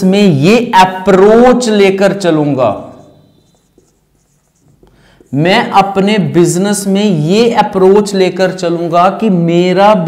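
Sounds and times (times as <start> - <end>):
marker scratching on a whiteboard: 2.7 - 6.1.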